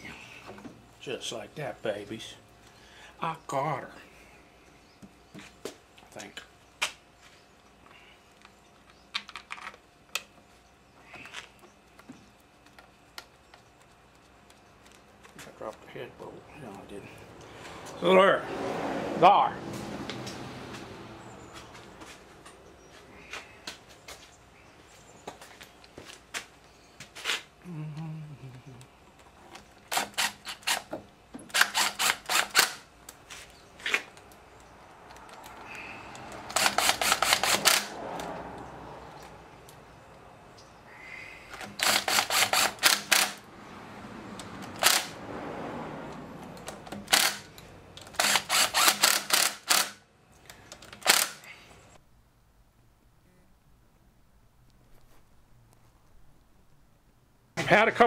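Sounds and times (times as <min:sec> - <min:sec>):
socket ratchet clicking: 0:46.6 - 0:50.0.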